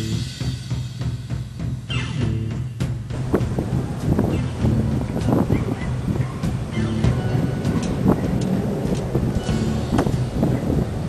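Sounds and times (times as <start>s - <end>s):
wind rumble on microphone: 3.1s - 11.0s
wind turbine clicking and clattering: 3.1s - 11.0s.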